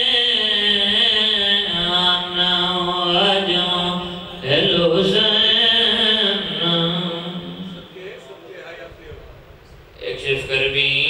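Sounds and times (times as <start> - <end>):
man chanting into a microphone: 0.0 - 8.5, 10.0 - 11.0.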